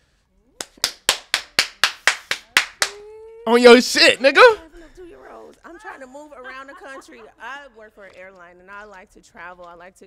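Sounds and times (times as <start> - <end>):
person clapping hands: 0.6 - 3.0.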